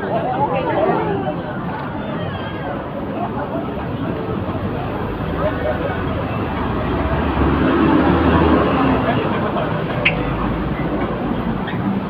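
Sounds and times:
passers-by talking: 0:00.0 - 0:12.0
traffic noise: 0:00.0 - 0:12.0.

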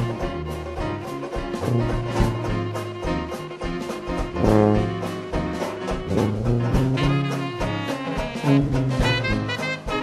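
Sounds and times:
jazz band playing: 0:00.0 - 0:10.0.

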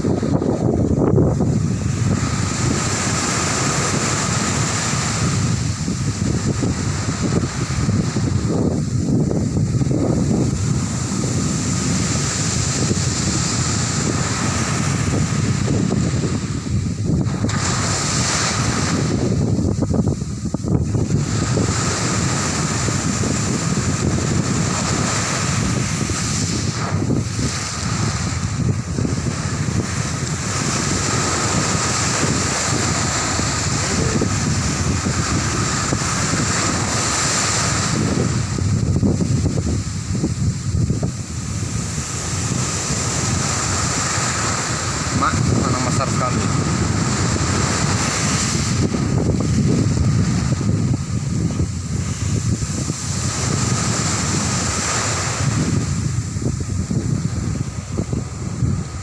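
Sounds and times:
sea waves washing up a beach: 0:00.0 - 0:59.0
wind rumbling on microphone: 0:00.0 - 0:59.0.

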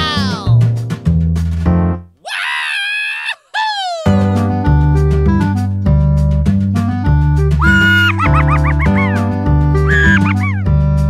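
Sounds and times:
high-pitched scream-like cry: 0:02.2 - 0:04.2, 0:07.6 - 0:09.1, 0:09.9 - 0:10.6.

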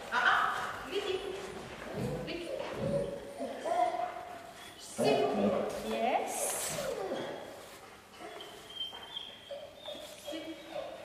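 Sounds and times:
puppy whining softly: 0:02.4 - 0:05.2, 0:06.7 - 0:11.0
faint lower whimpers: 0:06.8 - 0:07.6.

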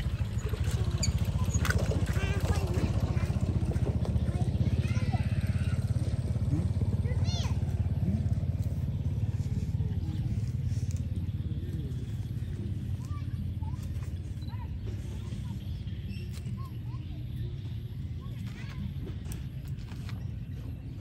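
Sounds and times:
small motorcycle engine running: 0:00.0 - 0:21.0.

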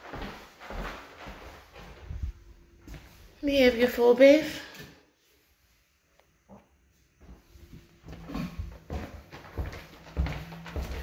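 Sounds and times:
footsteps on hard floor: 0:00.0 - 0:03.3, 0:06.4 - 0:11.0.

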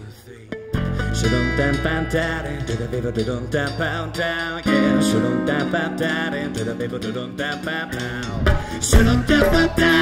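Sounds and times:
man singing: 0:00.0 - 0:10.0
strummed acoustic guitar: 0:00.6 - 0:10.0.

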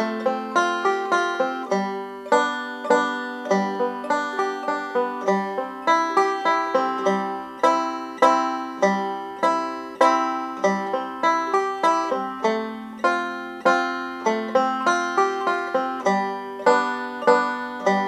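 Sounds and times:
banjo playing waltz chords: 0:00.0 - 0:18.0.

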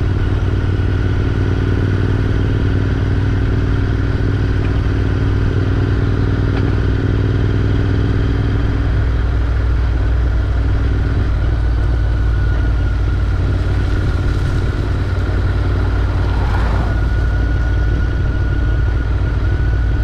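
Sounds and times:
motorcycle engine cruising: 0:00.0 - 0:20.0
road and wind noise: 0:00.0 - 0:20.0.

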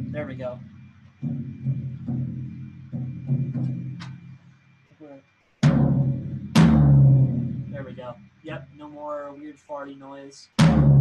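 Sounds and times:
floor tom hit with drumstick: 0:00.0 - 0:04.4, 0:05.6 - 0:08.2, 0:10.6 - 0:11.0.

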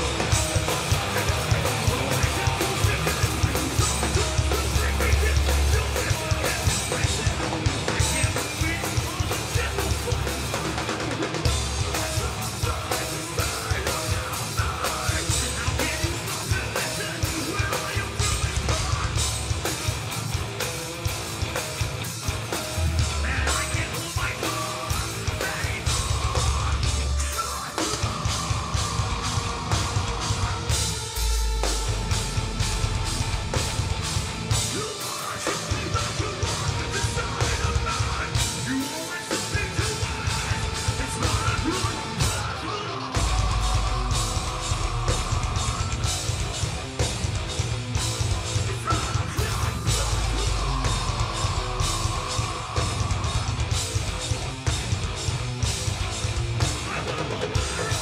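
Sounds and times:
bass guitar: 0:00.0 - 0:58.0
distorted electric guitars: 0:00.0 - 0:58.0
drum kit with heavy kick: 0:00.0 - 0:58.0.

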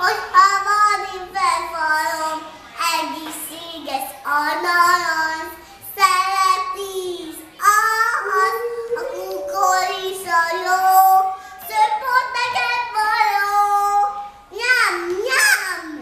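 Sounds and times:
girl singing unaccompanied: 0:00.0 - 0:16.0.

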